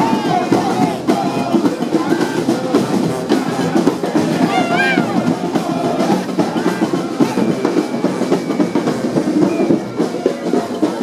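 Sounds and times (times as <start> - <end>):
brass band playing: 0.0 - 8.0
drum beats: 0.0 - 11.0.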